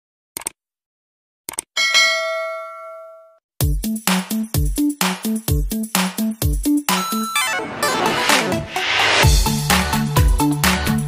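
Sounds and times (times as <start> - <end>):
notification bell ding: 1.8 - 3.4
electronic dance music: 3.6 - 11.0.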